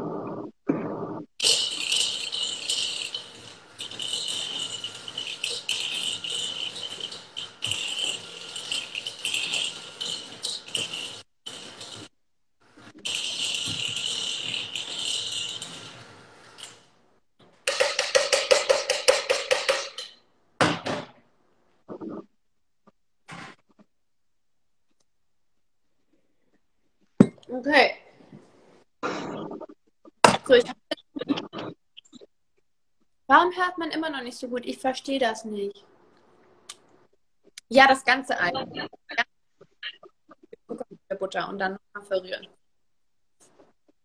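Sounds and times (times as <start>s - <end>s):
beaters rattling in bowl: 1.4s - 12.1s, 12.7s - 16.9s, 17.6s - 20.2s.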